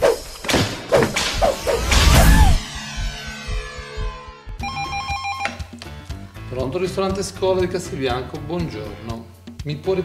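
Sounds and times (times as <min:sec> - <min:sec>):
sharp swishes: 0:00.9 - 0:02.6.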